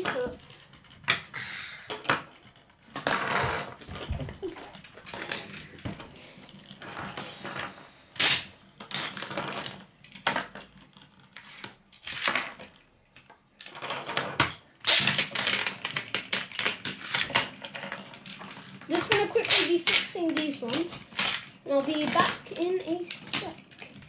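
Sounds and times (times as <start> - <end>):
metal spinning tops clattering: 14.9 - 24.0.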